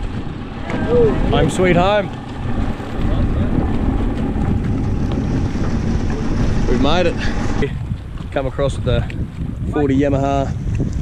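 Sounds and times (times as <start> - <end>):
outboard motor running: 0.0 - 11.0
wind buffeting microphone: 0.0 - 11.0.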